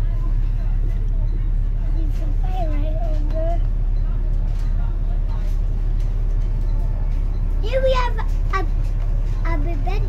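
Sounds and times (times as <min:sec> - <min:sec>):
bus engine and road rumble: 0:00.0 - 0:10.0
faint voices: 0:00.0 - 0:10.0.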